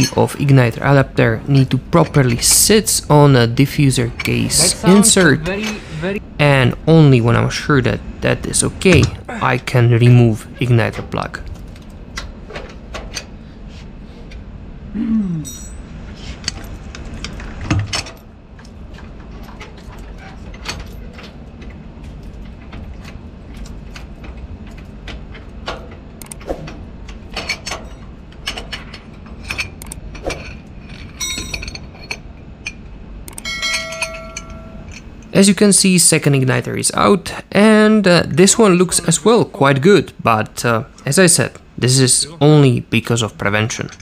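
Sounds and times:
steady low hum: 0:00.0 - 0:44.0
ringing metallic clinks: 0:15.4 - 0:15.9, 0:31.2 - 0:31.9, 0:33.4 - 0:35.1.

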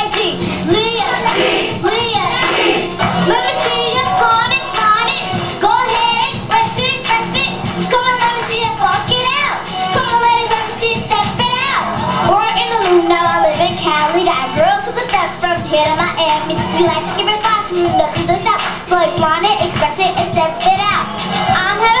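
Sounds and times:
girl rapping and singing: 0:00.0 - 0:22.0
hip-hop backing track: 0:00.0 - 0:22.0.

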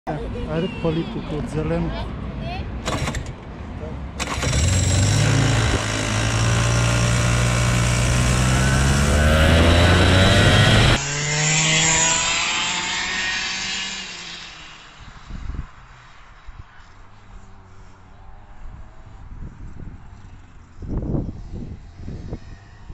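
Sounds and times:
kart engine revving: 0:02.8 - 0:03.4, 0:04.2 - 0:15.0
distant kart engine: 0:02.8 - 0:15.3.

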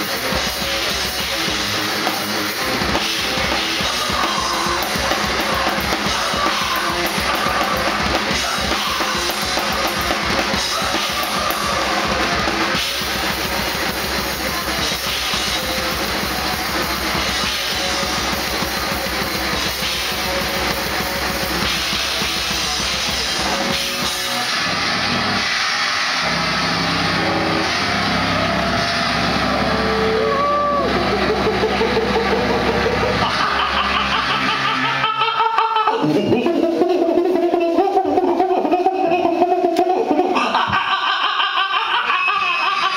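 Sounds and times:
distorted bass notes: 0:00.0 - 0:35.2
fast dense drumming: 0:00.0 - 0:39.7
distorted guitar: 0:00.0 - 0:42.9.

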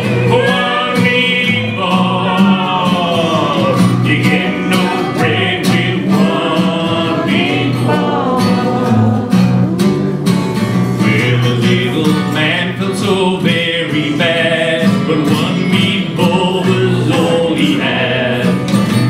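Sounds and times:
kazoo melody: 0:00.0 - 0:12.5
strummed acoustic guitar: 0:00.0 - 0:19.0.

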